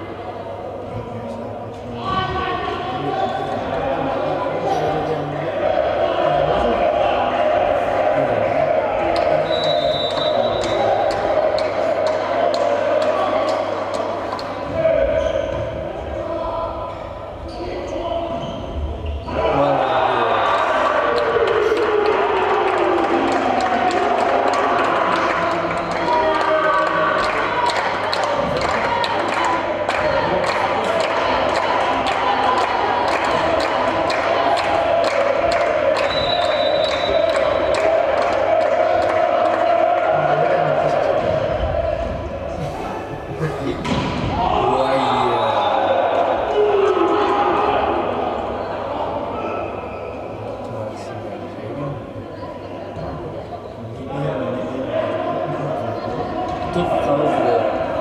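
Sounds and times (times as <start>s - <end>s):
crowd and player voices: 0.0s - 58.0s
referee's whistle: 9.4s - 10.8s, 36.0s - 37.3s.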